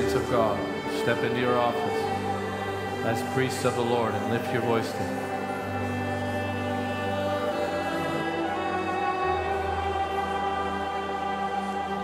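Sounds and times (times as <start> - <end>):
voices singing: 0.0 - 12.0
worship band playing: 0.0 - 12.0.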